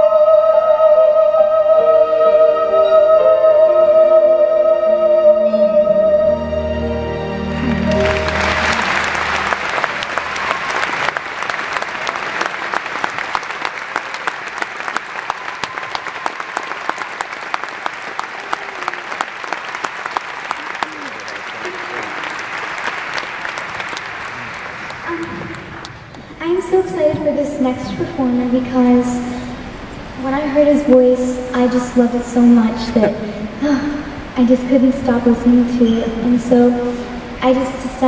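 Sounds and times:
audience applauding: 0:07.6 - 0:26.3
voices in crowd: 0:20.4 - 0:22.8.

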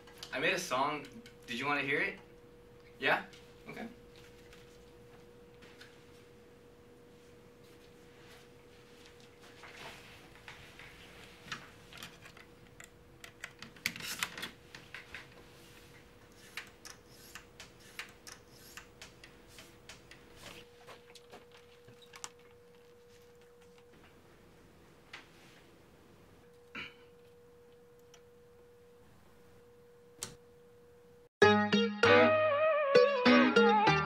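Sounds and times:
faint steady hum: 0:00.0 - 0:31.3.

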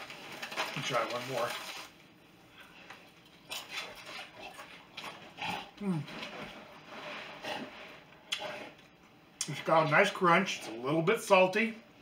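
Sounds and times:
tortilla chip crunching: 0:00.0 - 0:02.0
person humming mm: 0:05.8 - 0:06.1.

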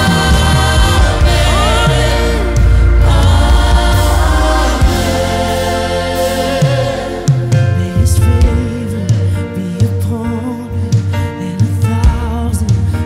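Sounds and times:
gospel worship music with singing: 0:00.0 - 0:13.0.

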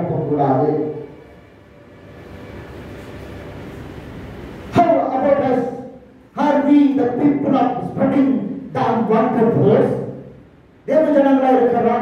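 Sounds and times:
faint hum: 0:00.0 - 0:12.0
low room rumble: 0:00.0 - 0:12.0.

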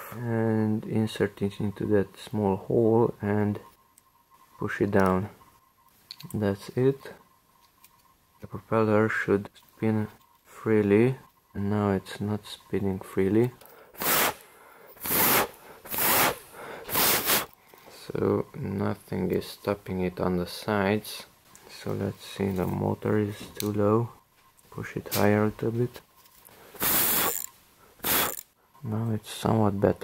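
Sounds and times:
puffs of breath: 0:13.6 - 0:17.9.

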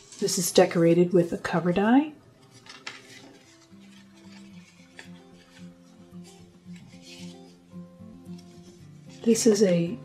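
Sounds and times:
soft background music: 0:00.0 - 0:10.0
cards rustling: 0:02.4 - 0:09.9.

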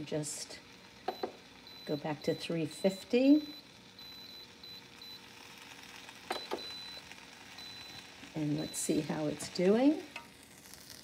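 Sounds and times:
short electronic beeps: 0:06.3 - 0:07.0.

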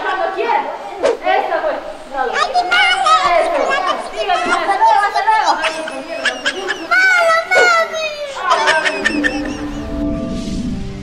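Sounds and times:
voices talking over one another: 0:00.0 - 0:09.9.

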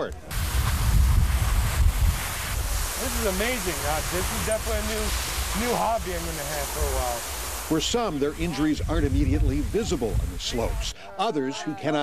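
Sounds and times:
wind buffeting microphone: 0:00.3 - 0:10.9.

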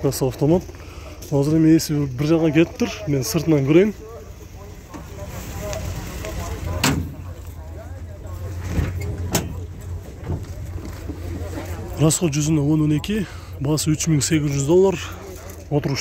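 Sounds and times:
faint distant voices: 0:00.0 - 0:16.0.

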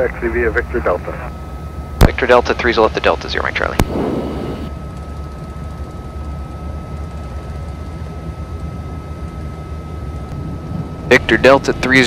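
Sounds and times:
turboprop engines droning: 0:00.0 - 0:12.0.

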